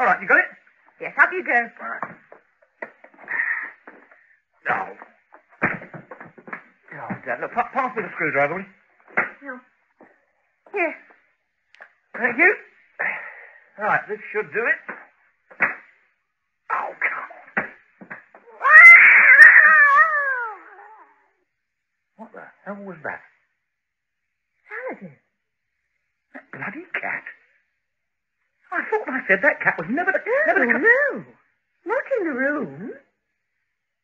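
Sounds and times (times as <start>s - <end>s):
cat yowling: 18.5s - 21.3s.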